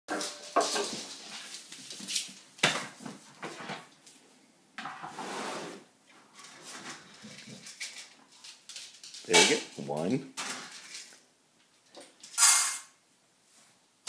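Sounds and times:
rustling: 0.1 - 4.3, 5.1 - 13.8.

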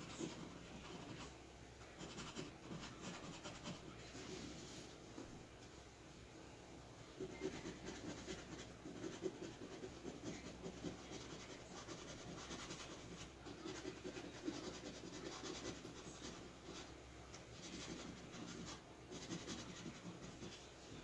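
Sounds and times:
scratching lottery ticket: 0.0 - 4.5, 7.2 - 21.0.

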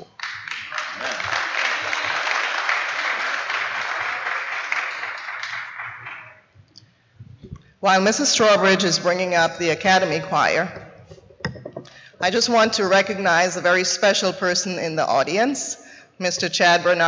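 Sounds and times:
congregation applauding: 0.0 - 6.6.

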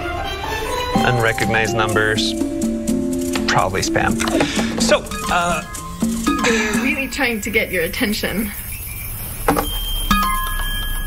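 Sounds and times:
phone notification chime: 1.0 - 7.1.

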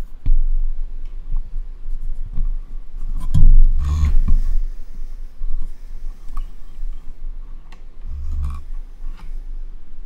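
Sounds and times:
steady low hum: 0.0 - 10.0
heavy low thump: 3.3 - 4.7.

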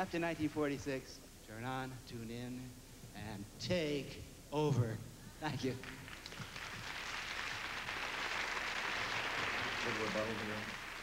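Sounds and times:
audience applauding: 5.8 - 11.0.

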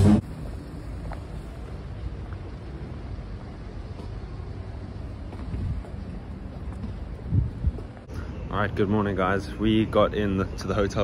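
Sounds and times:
low street rumble: 0.0 - 11.0
wind on microphone: 5.3 - 8.1.

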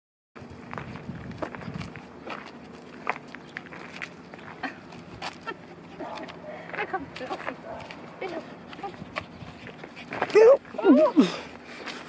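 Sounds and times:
footsteps on asphalt: 0.4 - 12.0.

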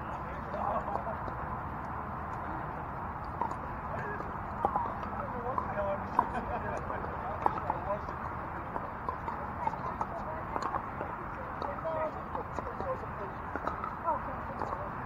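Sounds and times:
distant players chatter: 0.0 - 15.0.

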